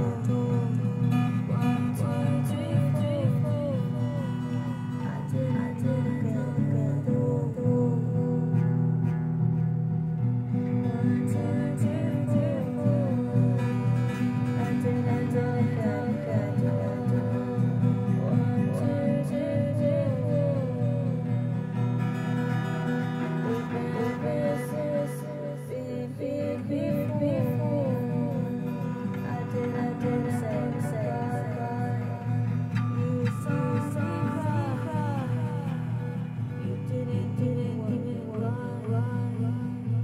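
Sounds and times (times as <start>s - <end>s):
person singing: 0.0s - 9.3s, 10.5s - 40.0s
acoustic guitar playing: 0.0s - 40.0s.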